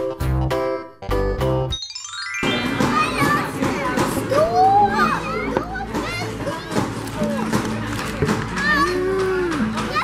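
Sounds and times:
music playing: 0.0s - 10.0s
children chattering: 2.5s - 10.0s.

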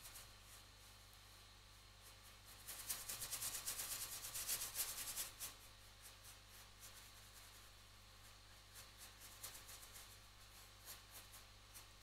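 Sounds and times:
paintbrush scrubbing on board: 2.0s - 12.0s.

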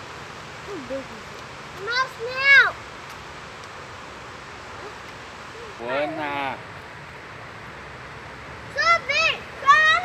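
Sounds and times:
outdoor background hiss: 0.0s - 10.0s
child's high-pitched call: 8.8s - 10.0s.

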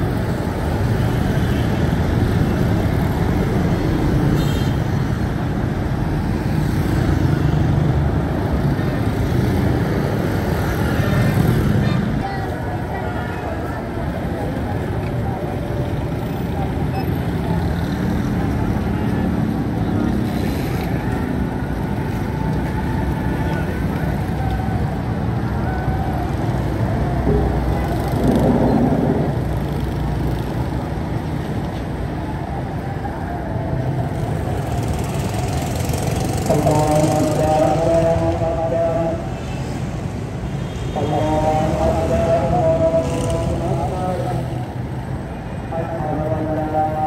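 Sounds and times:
people's voices: 8.2s - 47.0s
motorcycle engines running: 13.8s - 39.3s.

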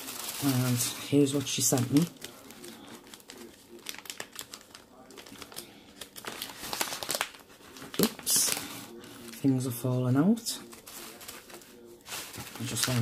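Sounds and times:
tissue paper crinkling: 0.0s - 13.0s.

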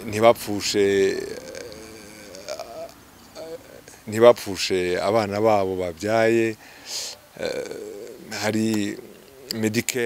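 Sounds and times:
man speaking: 0.0s - 6.6s, 7.4s - 10.0s.

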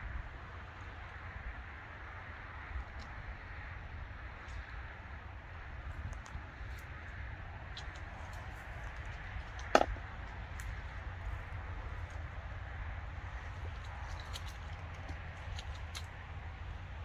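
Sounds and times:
steady low rumble: 0.0s - 17.0s
faint water splashing: 2.9s - 17.0s.

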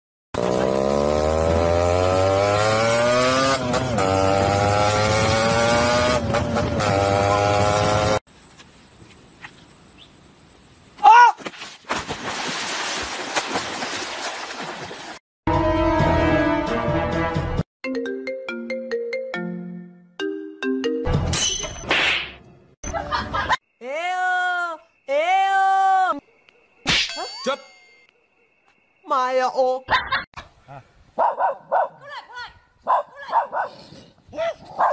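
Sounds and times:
sharp metallic clang ringing: 21.3s - 21.9s, 26.8s - 28.1s.

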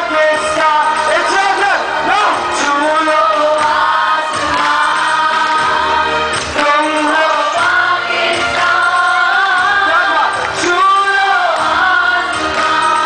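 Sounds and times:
choir singing: 2.6s - 13.0s.

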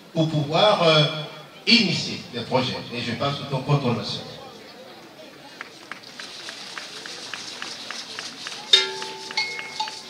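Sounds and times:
rhythmic percussive clicks: 6.2s - 10.0s.

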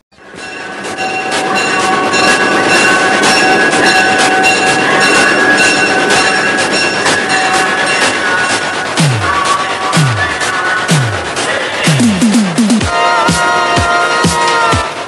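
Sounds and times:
running train with clicks: 0.1s - 15.0s.

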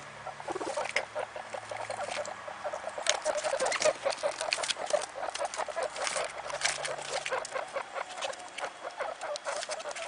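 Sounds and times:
guinea pigs squeaking: 0.0s - 10.0s.

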